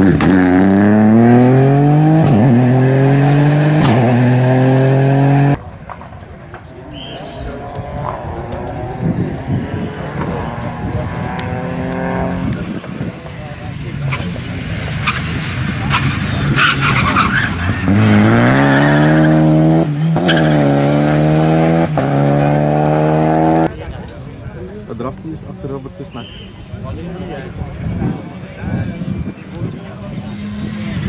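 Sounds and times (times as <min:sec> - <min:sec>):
rally car engine revving: 0:00.0 - 0:05.6, 0:07.6 - 0:13.1, 0:13.9 - 0:23.7.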